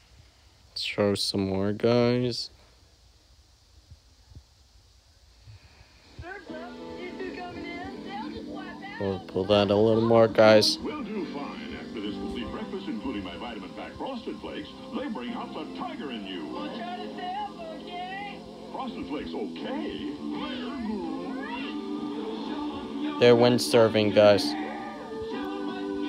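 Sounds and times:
voices from small speaker: 6.2s - 26.0s
commercial music: 6.5s - 26.0s.

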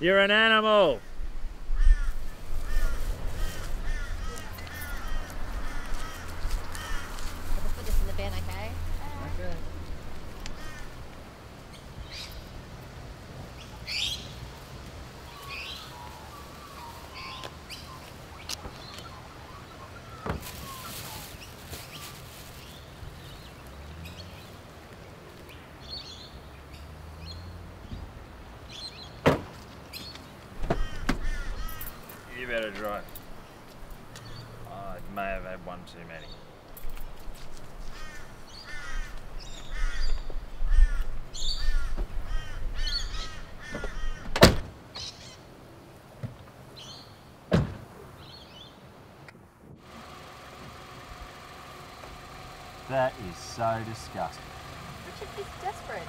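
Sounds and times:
crows cawing: 1.0s - 7.6s, 10.5s - 11.2s, 30.7s - 32.3s, 37.8s - 44.4s
car door opening clunk: 29.2s - 29.7s, 30.6s - 31.4s, 43.7s - 44.7s, 47.5s - 47.9s.

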